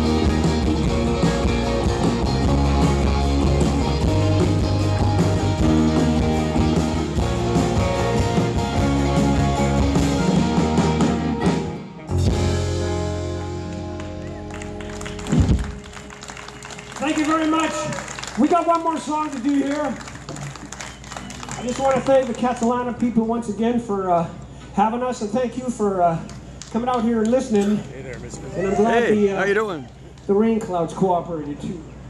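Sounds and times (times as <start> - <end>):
live band playing: 0.0 - 19.4.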